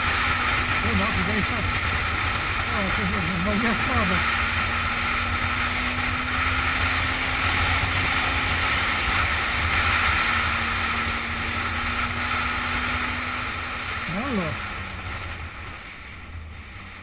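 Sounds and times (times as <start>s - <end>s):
motorcycle engine running: 0.0s - 17.0s.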